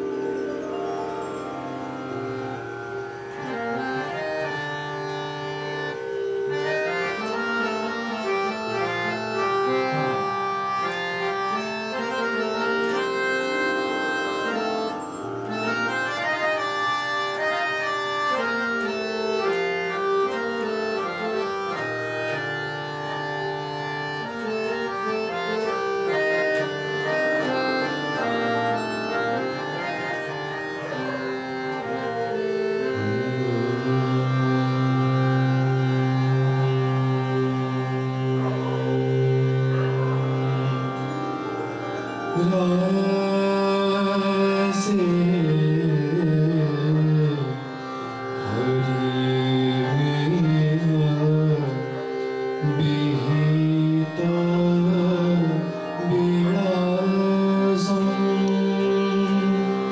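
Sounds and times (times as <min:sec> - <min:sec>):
harmonium melody: 0:00.0 - 0:59.9.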